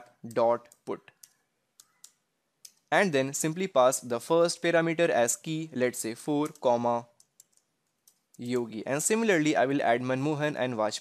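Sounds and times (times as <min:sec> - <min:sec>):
faint keyboard keystrokes: 0:06.4 - 0:08.8.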